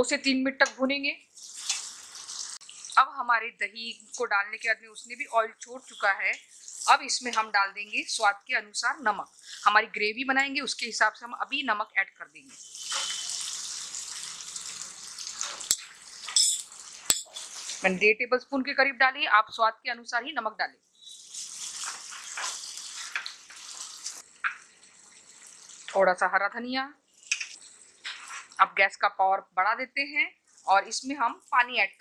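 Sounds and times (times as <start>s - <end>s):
masala sizzling in hot oil: 1.0s - 11.6s, 12.4s - 17.9s, 20.9s - 26.3s, 27.0s - 28.7s, 30.0s - 32.0s.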